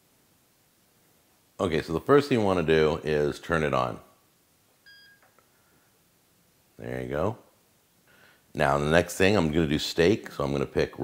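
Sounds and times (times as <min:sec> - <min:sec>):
short electronic beep: 0:04.8 - 0:05.3
faint electronic tone: 0:04.8 - 0:05.4.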